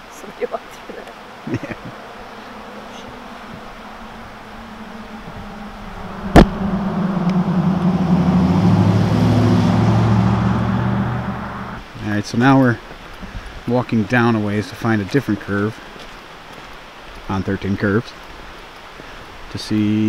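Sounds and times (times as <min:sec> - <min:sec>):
car driving past: 0:01.1 - 0:11.9.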